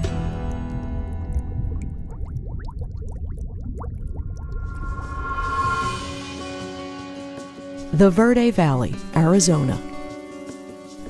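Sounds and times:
underwater bubbling: 0.0s - 5.3s
low rumble: 1.1s - 8.0s.

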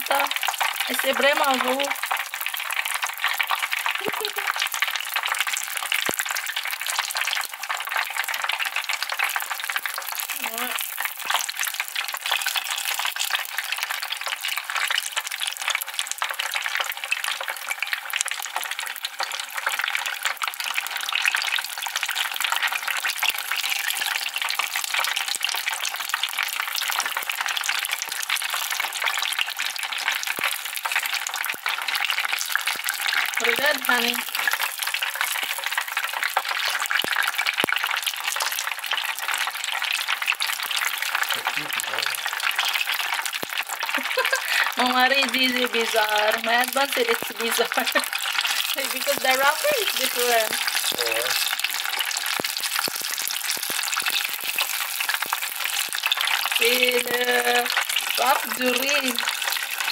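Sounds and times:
food deep-frying in oil: 0.0s - 59.9s.

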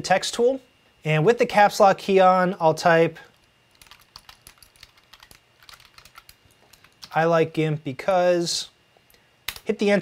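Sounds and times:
typing on a keyboard: 3.7s - 7.2s.

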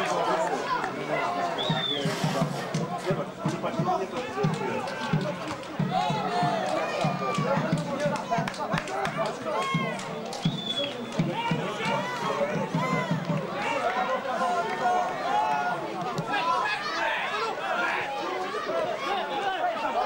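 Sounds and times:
spectators talking and calling out: 0.0s - 20.0s.

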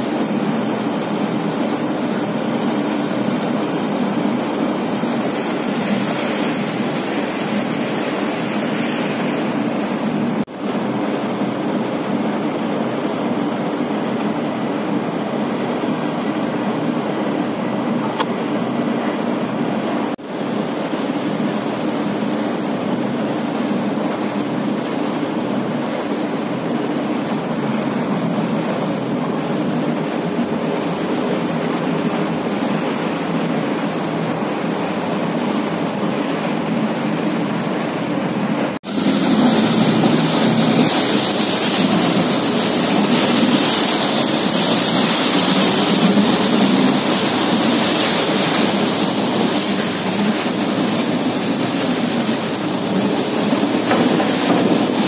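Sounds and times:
boat engines rumbling: 0.0s - 55.0s
water rushing: 0.0s - 55.0s.

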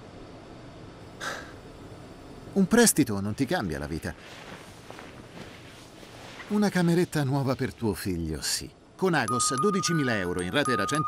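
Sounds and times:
bedclothes rustling: 3.2s - 8.2s.

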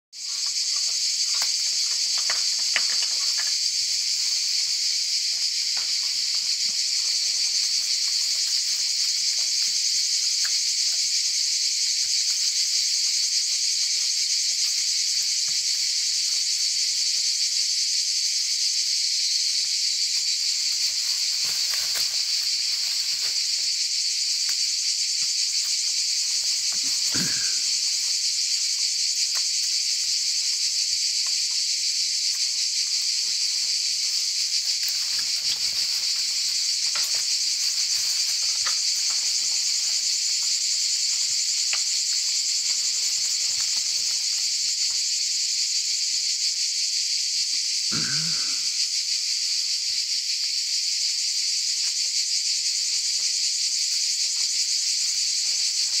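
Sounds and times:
insect chorus drone: 0.2s - 56.0s.

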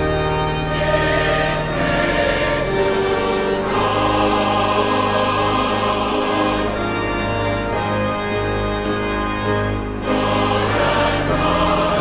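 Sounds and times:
choir singing a hymn: 0.0s - 8.6s, 9.6s - 12.0s
pipe organ chords: 0.0s - 12.0s.

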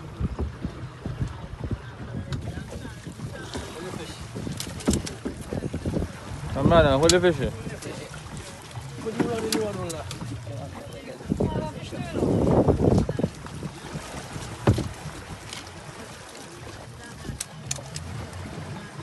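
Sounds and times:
light clicks: 17.3s - 18.1s.

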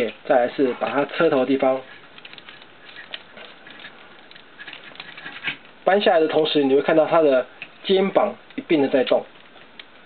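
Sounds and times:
plastic toy parts clicking: 1.0s - 5.4s.

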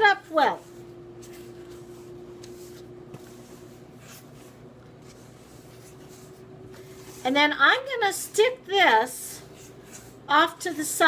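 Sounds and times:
faint steady hum: 0.0s - 11.0s
utensil scraping dry mix in bowl: 0.0s - 11.0s.

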